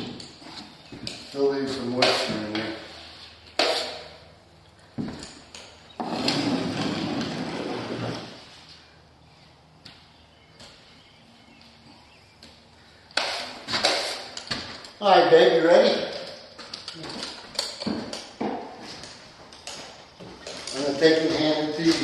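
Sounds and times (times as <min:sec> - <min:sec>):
drywall knife scraping mud: 0:03.6 - 0:04.1.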